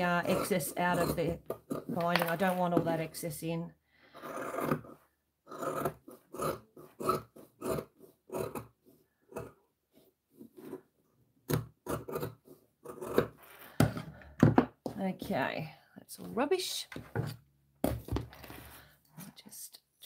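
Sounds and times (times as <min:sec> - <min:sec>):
scissors snipping fabric: 0:04.2 - 0:09.6.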